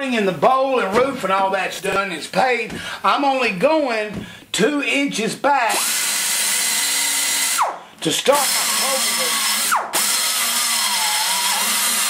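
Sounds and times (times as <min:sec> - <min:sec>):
pneumatic die grinder whining: 0:05.7 - 0:12.0.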